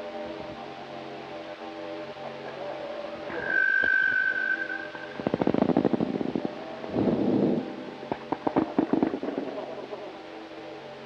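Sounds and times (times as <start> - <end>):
electric guitar with effects: 3.3 - 10.2.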